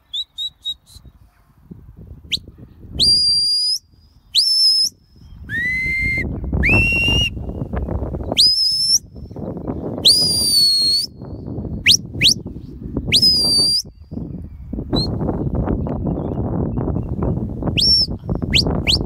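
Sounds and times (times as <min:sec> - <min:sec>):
sharp high whistles: 0:00.1 - 0:01.2, 0:02.3 - 0:09.4, 0:10.0 - 0:12.5, 0:13.1 - 0:14.2, 0:14.9 - 0:15.3, 0:17.7 - 0:19.0
wind rumble on microphone: 0:00.8 - 0:19.0.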